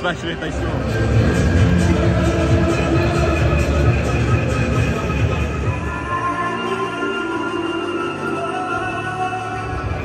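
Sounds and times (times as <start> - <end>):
crowd noise rumble: 0.0 - 10.0
crowd singing together: 1.4 - 4.6.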